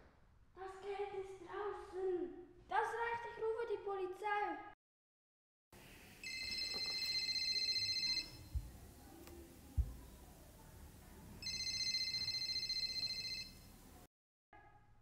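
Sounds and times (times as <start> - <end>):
electronic ringing tone: 6.2 - 8.6, 11.4 - 13.7
short dull thumps: 8.5 - 8.8, 9.7 - 10.2.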